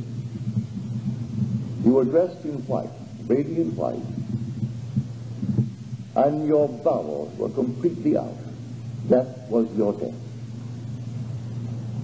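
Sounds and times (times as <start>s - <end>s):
faint low thumps: 0.0s - 12.0s
steady low hum: 0.0s - 12.0s.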